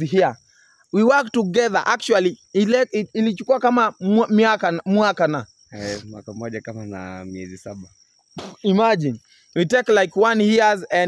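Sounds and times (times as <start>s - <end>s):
men talking: 0.0s - 0.4s, 1.0s - 11.0s
cricket trilling: 0.0s - 11.0s
long held voice sound: 5.8s - 6.1s.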